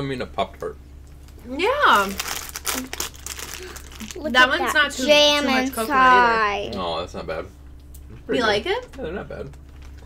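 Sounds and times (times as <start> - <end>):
plastic packet crinkling: 1.2 - 4.8, 9.5 - 10.0.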